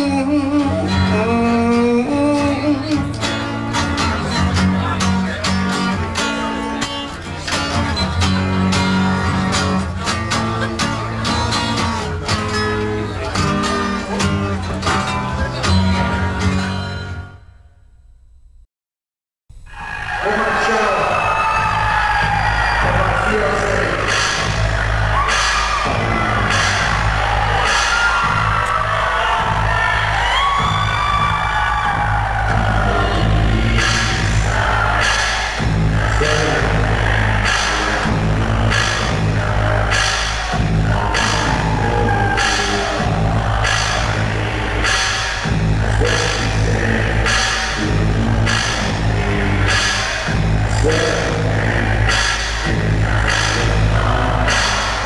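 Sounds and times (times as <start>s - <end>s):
bass line: 0.0s - 18.6s, 19.5s - 55.0s
drumbeat: 21.4s - 55.0s
wordless vocal sounds: 32.5s - 55.0s.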